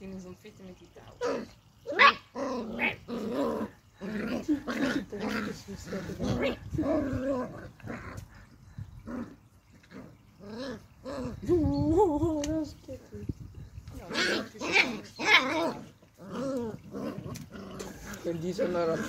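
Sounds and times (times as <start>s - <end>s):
puppies play-growling and whining: 1.2s - 12.4s, 14.0s - 19.0s.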